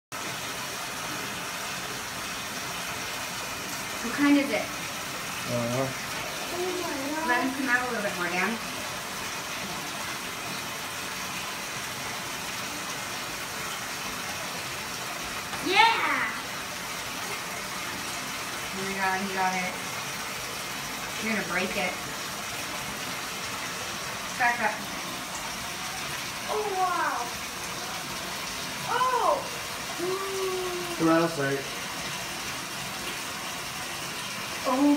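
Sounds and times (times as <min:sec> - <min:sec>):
bathtub jets churning water: 0:00.1 - 0:34.9.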